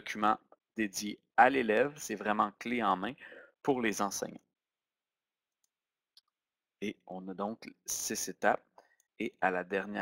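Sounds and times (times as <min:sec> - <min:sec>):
man talking: 0:00.0 - 0:04.4, 0:06.8 - 0:10.0.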